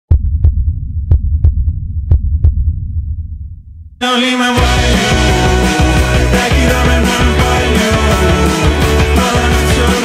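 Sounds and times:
heartbeat thumps: 0.1 - 3.7
low rumble: 0.1 - 4.0.

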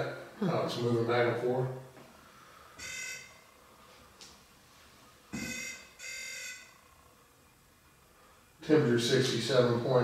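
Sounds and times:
short electronic beeps: 2.8 - 3.4, 5.4 - 6.7.

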